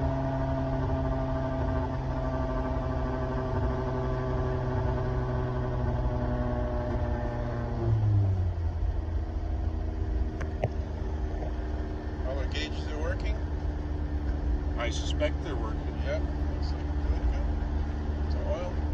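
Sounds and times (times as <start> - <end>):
car engine at highway speed: 0.0 - 18.9
road noise inside car: 0.0 - 18.9.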